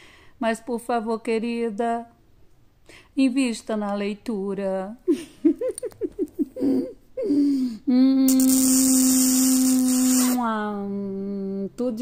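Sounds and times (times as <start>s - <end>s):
woman laughing: 5.1s - 7.5s
hiss: 8.3s - 10.4s.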